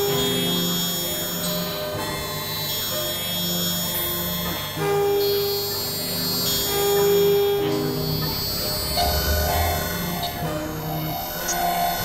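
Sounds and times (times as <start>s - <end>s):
experimental synthesizer music: 6.2s - 12.0s
steady high synth tones: 6.6s - 12.0s.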